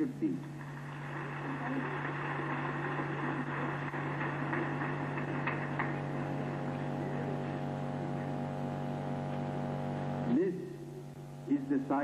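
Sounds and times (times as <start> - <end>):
low electrical mains hum: 0.0 - 12.0.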